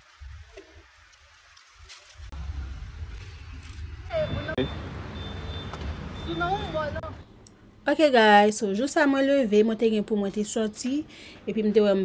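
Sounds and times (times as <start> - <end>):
steady low rumble: 2.3 - 4.7.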